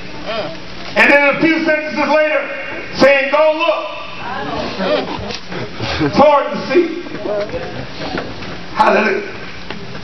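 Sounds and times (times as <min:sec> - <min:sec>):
congregation calling out: 0:01.0 - 0:05.3, 0:05.9 - 0:07.2.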